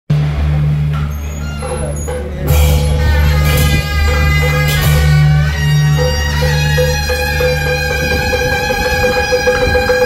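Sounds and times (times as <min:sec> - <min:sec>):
vehicle engine humming: 0:00.1 - 0:10.0.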